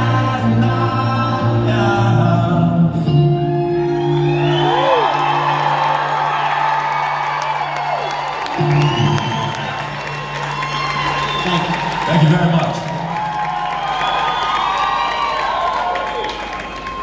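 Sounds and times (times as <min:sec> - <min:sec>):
audience cheering and whooping: 0:03.5 - 0:17.0.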